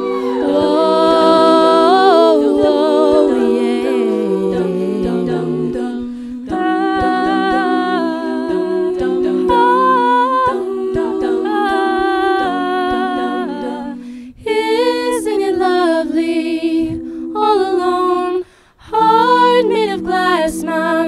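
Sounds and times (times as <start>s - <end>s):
vocal group humming in harmony: 0.0s - 21.0s.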